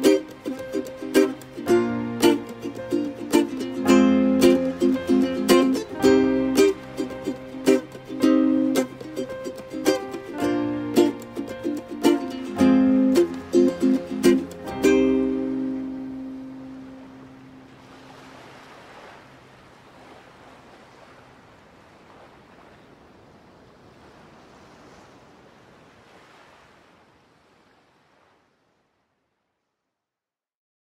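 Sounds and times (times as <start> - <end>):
ukulele chords: 0.0 - 17.7
faint surf-like noise: 0.0 - 29.8.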